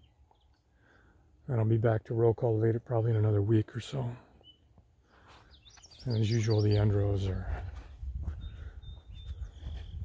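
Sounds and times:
small bird chirping: 0:00.0 - 0:00.7, 0:04.4 - 0:04.7, 0:05.4 - 0:07.7, 0:08.3 - 0:10.0.

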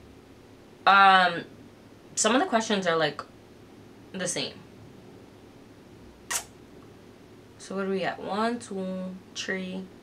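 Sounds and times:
short sharp click: 0:06.3 - 0:06.5.

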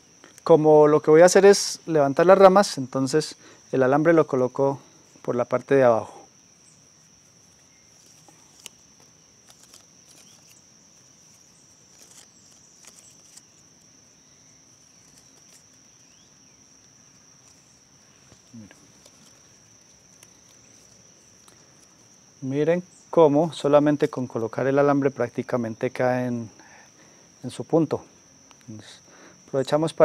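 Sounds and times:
cricket chirring: 0:00.0 - 0:30.0
wire clicks and rustles: 0:07.4 - 0:13.9, 0:16.8 - 0:22.1.

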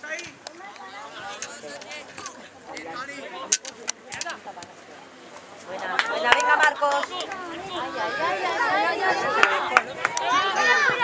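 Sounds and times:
people calling and shouting: 0:00.0 - 0:11.0.

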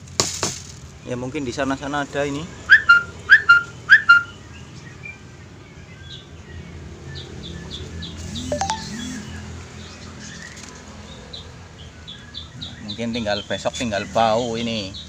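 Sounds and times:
birds chirping: 0:07.7 - 0:10.6.

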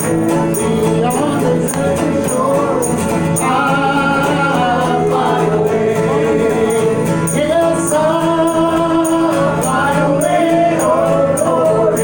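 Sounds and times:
bluegrass band playing: 0:00.0 - 0:12.0
voices singing in harmony: 0:00.0 - 0:12.0.

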